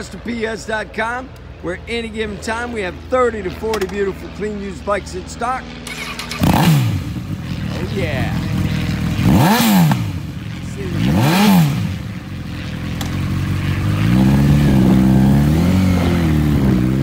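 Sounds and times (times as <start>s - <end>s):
motorcycle engine revving: 5.6s - 17.0s
motorcycle pulling away: 5.8s - 17.0s.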